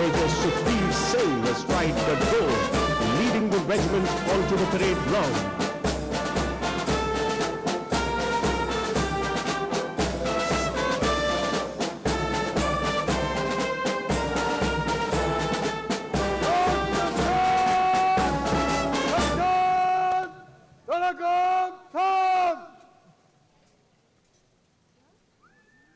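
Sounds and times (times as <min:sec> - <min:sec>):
bass drum beat: 0:00.0 - 0:07.3
brass band playing a march: 0:00.0 - 0:20.1.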